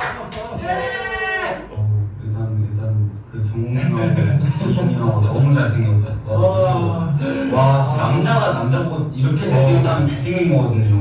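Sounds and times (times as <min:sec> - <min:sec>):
young men talking: 0:00.0 - 0:11.0.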